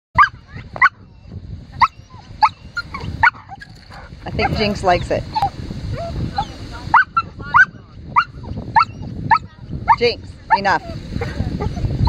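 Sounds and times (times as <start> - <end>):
dog yipping: 0.2 - 11.0.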